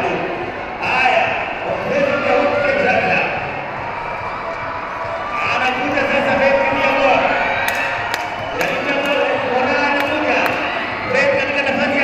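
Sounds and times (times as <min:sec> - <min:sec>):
man commentating: 0:08.6 - 0:12.0.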